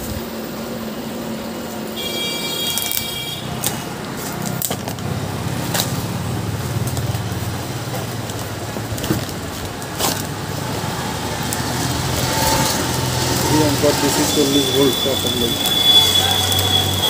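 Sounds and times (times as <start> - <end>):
low mechanical hum: 0.0 - 14.3.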